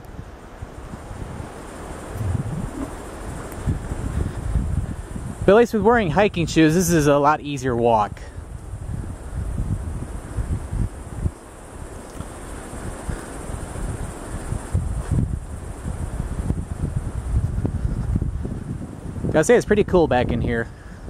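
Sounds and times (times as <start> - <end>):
leaves rustling in trees: 0.0 - 19.6
wind buffeting microphone: 0.0 - 21.0
low rumbling noise: 1.2 - 5.5.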